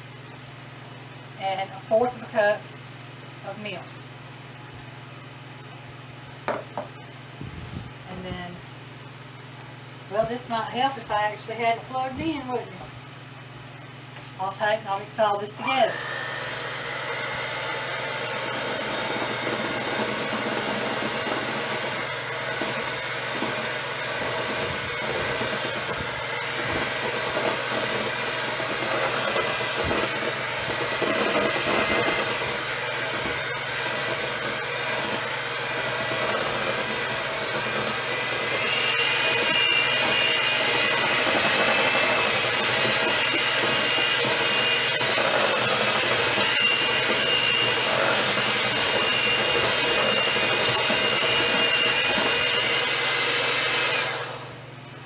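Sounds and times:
electric hand mixer running: 15.6 - 54.7.

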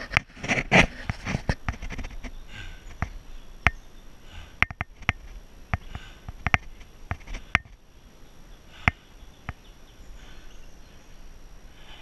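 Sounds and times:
person breathing hard: 2.4 - 3.2, 4.2 - 4.9, 5.8 - 7.7, 8.6 - 9.3, 10.0 - 12.0.

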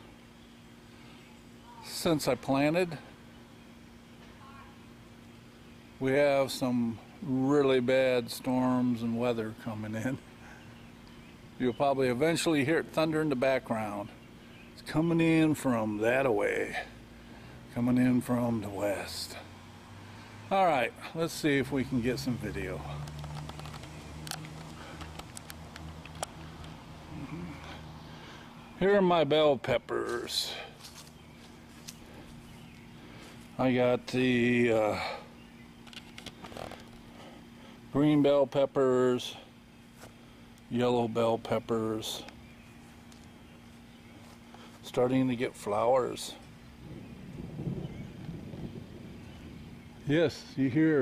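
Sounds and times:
steady low hum: 0.0 - 51.0
camera handling clicks and taps: 23.0 - 26.8.

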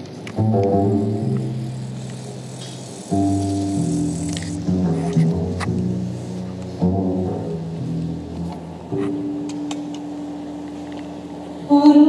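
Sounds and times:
acoustic ensemble playing slow music: 0.0 - 12.0.

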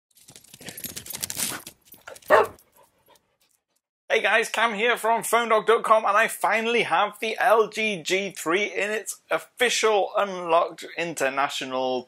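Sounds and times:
dog bark: 2.3 - 2.6.

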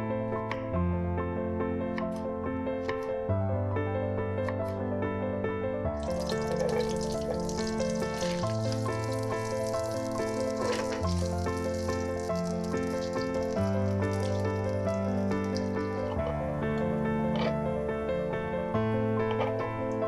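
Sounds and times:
piano background music: 0.0 - 20.0
garlic sizzling in hot oil: 6.0 - 16.2.

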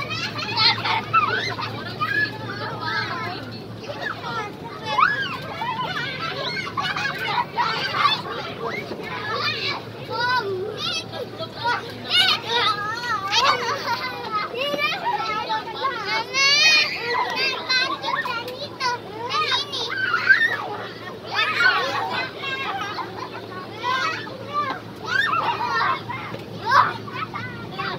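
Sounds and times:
children shouting and squealing: 0.0 - 27.9.

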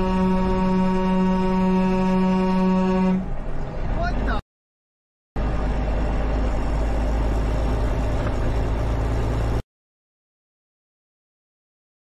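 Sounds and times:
vehicle horn blast: 0.0 - 3.2
engine noise: 0.0 - 4.4, 5.4 - 9.6
road noise: 0.0 - 4.4, 5.4 - 9.6.

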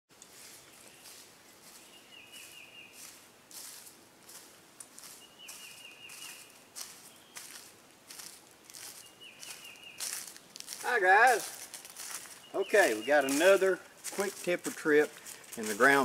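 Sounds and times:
footsteps crunching dry leaves: 0.2 - 16.0.

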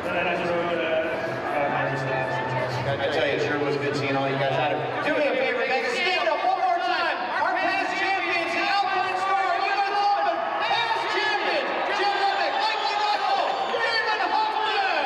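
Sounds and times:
man speaking over public address: 0.0 - 15.0.

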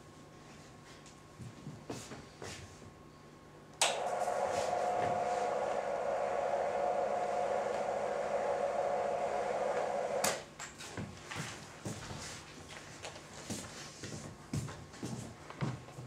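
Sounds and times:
electric motor running: 3.9 - 10.4.

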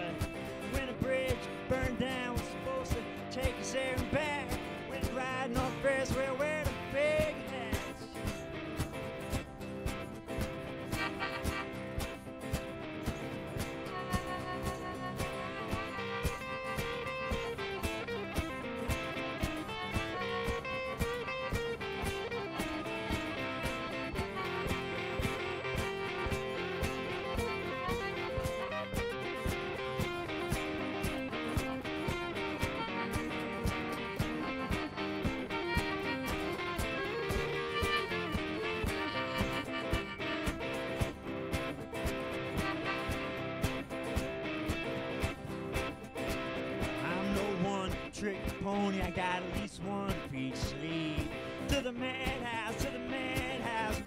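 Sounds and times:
acoustic guitar strumming: 0.0 - 54.0
electric guitar picking: 0.0 - 54.0
harmonica melody: 0.0 - 54.0.

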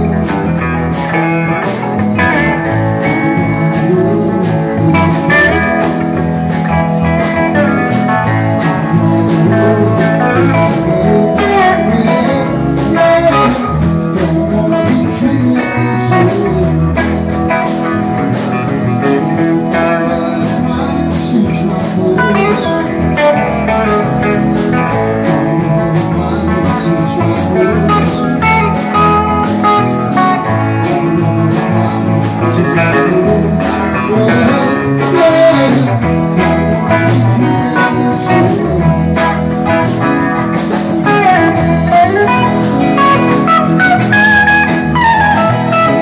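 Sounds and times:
drums keeping a steady beat: 0.0 - 46.0
electric guitars: 0.0 - 46.0
lead guitar bending notes: 0.0 - 46.0.

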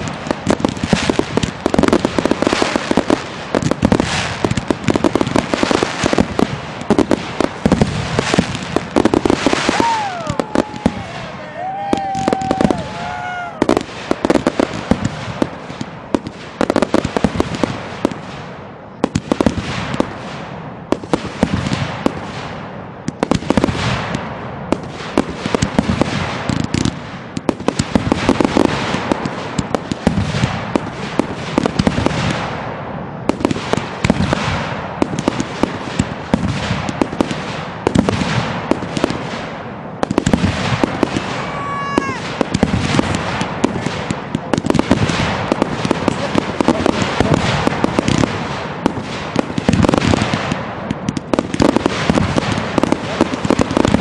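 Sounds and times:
firework crackle: 0.0 - 54.0
fireworks bursting in a barrage: 0.0 - 54.0.

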